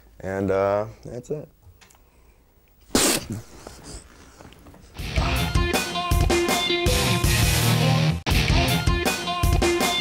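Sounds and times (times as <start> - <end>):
man sneezing: 2.9 - 4.0.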